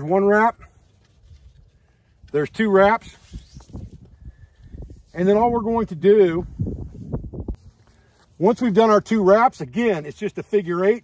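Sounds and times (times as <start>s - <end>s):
cord rustling on wooden poles: 0.0s - 11.0s.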